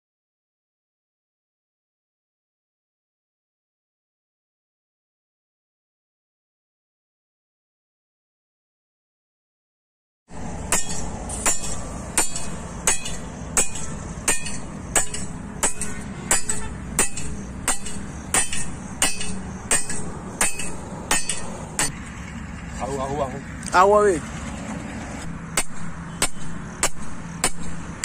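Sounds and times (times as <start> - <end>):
hammer striking metal rod: 10.6 - 22.0, 25.6 - 28.0.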